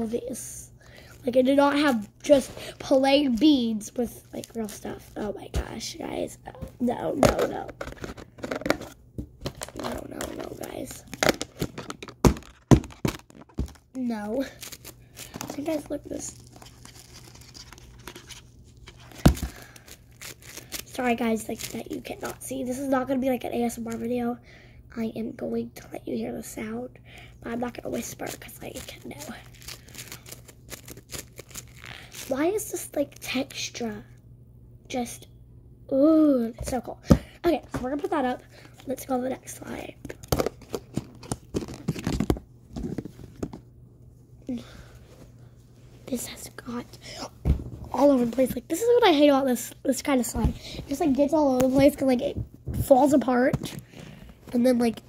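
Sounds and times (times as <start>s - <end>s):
plastic containers clicking and rustling: 7.1s - 14.0s, 40.1s - 43.6s.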